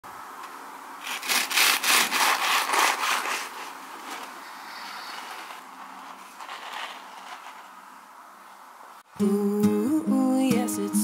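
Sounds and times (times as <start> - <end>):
bread knife sawing through bun: 1.0 - 7.4.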